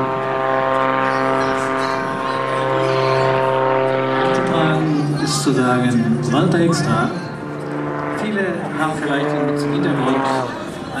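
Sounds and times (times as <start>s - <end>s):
propeller plane engine droning: 0.0s - 11.0s.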